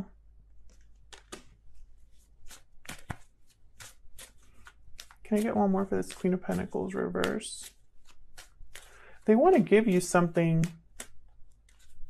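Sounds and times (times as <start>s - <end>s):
cards being shuffled: 0.5s - 12.0s.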